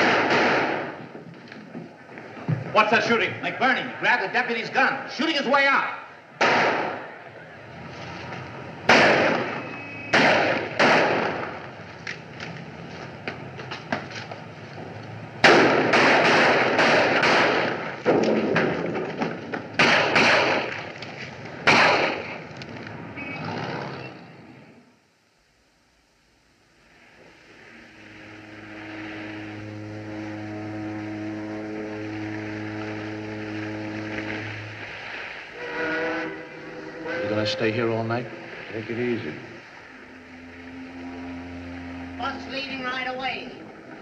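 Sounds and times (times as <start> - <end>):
echoing gunshots: 0.0 - 1.0, 6.4 - 7.2, 8.8 - 11.6, 15.4 - 20.9, 21.6 - 22.4.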